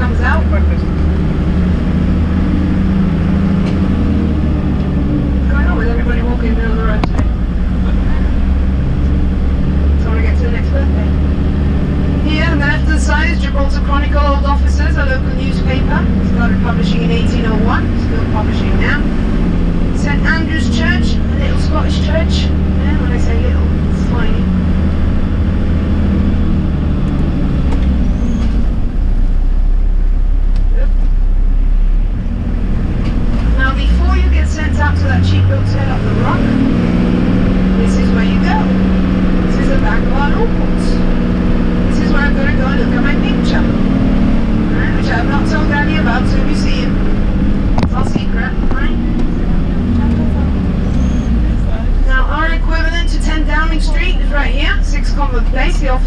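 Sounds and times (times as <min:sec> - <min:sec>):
indistinct voices talking: 0:00.0 - 0:28.7, 0:32.6 - 0:56.0
vehicle engine and road rumble: 0:00.0 - 0:56.0.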